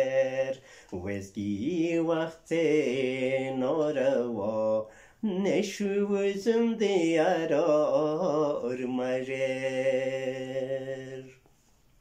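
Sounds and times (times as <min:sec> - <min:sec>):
man singing unaccompanied: 0:00.0 - 0:11.5.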